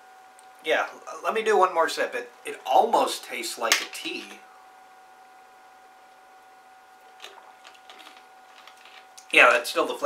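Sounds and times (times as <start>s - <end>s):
faint high hum: 0.0s - 10.0s.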